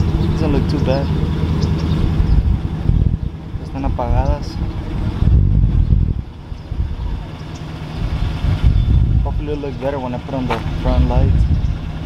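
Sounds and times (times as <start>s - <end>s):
pickup truck engine idling: 0.0s - 12.0s.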